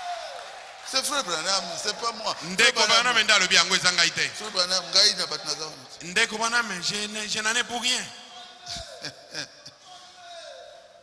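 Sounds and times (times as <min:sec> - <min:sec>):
preacher speaking over pa: 0:01.0 - 0:08.1.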